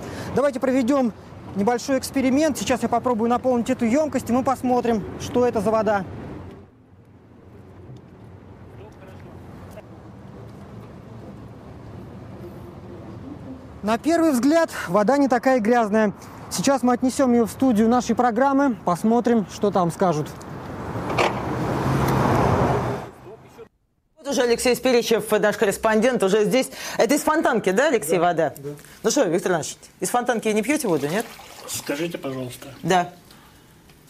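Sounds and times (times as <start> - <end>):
car going by: 20.5 - 23.6
container filling with river water: 30.6 - 32.9.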